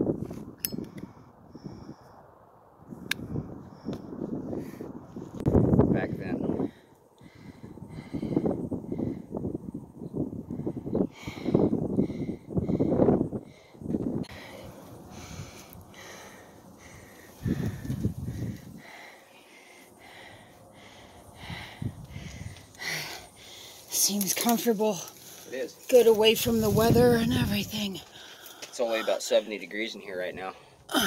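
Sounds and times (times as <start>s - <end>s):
person breathing hard: 6.5s - 9.6s, 10.5s - 23.9s.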